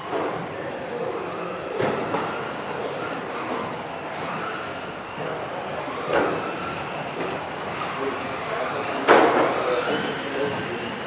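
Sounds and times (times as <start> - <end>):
model car motors whining: 0.0 - 11.0.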